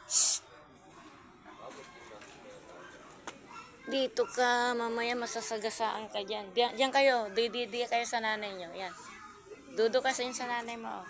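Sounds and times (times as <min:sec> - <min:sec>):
children playing: 0:00.0 - 0:11.0.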